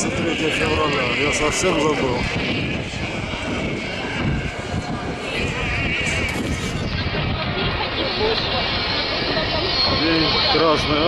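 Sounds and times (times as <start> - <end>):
low city rumble: 0.0 - 11.0.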